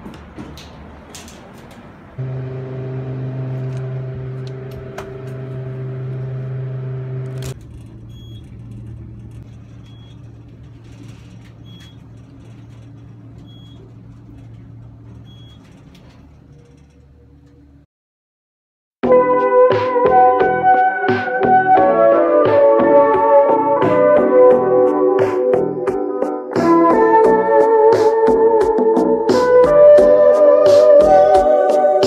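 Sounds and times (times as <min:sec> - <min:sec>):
lift car humming: 0:00.0 - 0:17.8
loud mechanical hum: 0:00.0 - 0:17.8.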